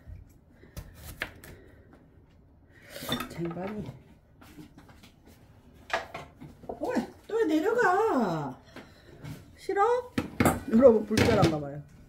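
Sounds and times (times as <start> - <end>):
knife cutting melon: 0.7 - 1.6.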